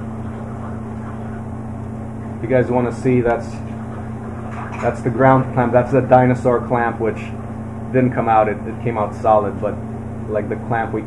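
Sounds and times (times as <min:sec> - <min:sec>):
low hum with faint hiss: 0:00.0 - 0:11.0.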